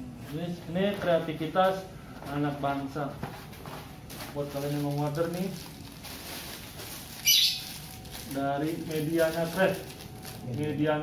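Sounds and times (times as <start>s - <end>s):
high-pitched chirp: 7.2s - 7.8s.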